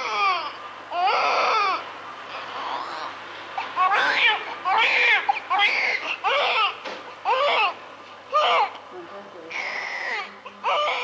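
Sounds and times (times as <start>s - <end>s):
baby crying: 0.0s - 8.8s, 9.5s - 11.0s.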